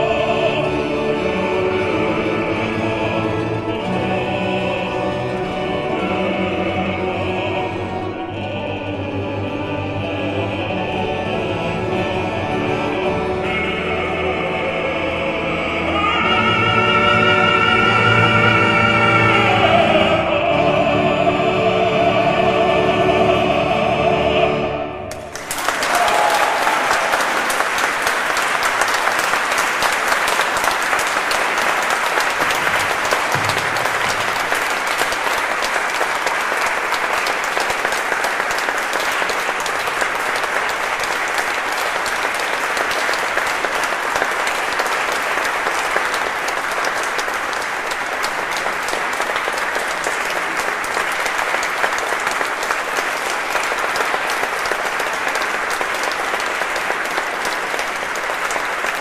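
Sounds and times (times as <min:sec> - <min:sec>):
audience applauding: 0:25.1 - 0:59.0.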